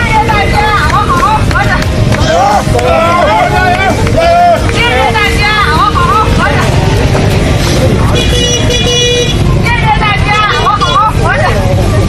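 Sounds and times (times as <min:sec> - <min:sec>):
motorcycles idling: 0:00.0 - 0:12.0
voices calling out: 0:00.0 - 0:12.0
horn sounding: 0:08.1 - 0:09.6.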